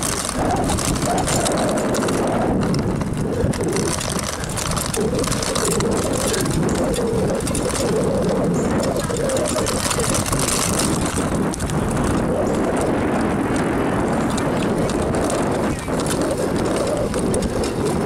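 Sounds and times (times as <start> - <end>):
bicycle road noise: 0.0 - 18.0
wind rushing over microphone: 0.0 - 18.0.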